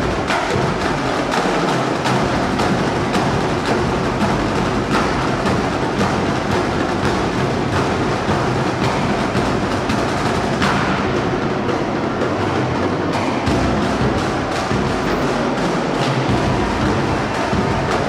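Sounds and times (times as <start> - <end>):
drum line playing cadence: 0.0 - 18.0.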